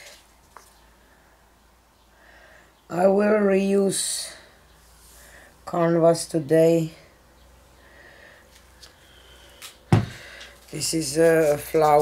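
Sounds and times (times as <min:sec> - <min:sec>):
plastic bottle knock: 0:09.9 - 0:10.2.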